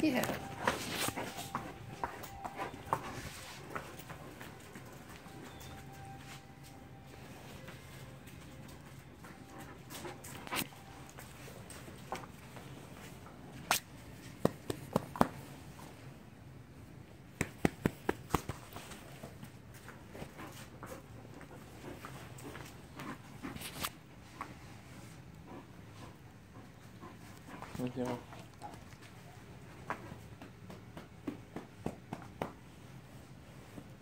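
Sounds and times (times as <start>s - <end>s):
dogs playing sharp sounds: 0.0s - 16.0s, 17.3s - 31.6s.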